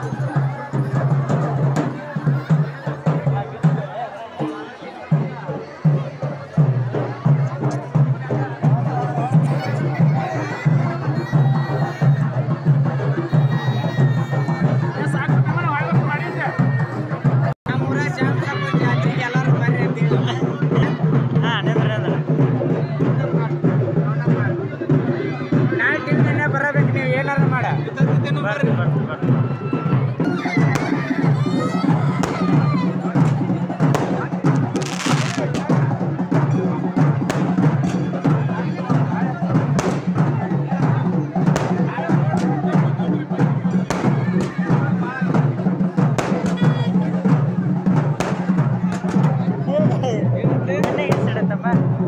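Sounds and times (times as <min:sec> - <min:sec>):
crowd voices: 0:00.0 - 0:52.0
percussion and music: 0:00.0 - 0:52.0.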